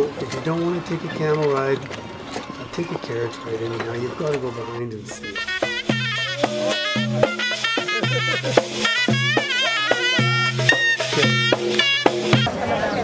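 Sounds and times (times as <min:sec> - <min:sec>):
pipe playing ornamented melody: 0:02.6 - 0:12.5
frame drum strikes: 0:05.1 - 0:12.5.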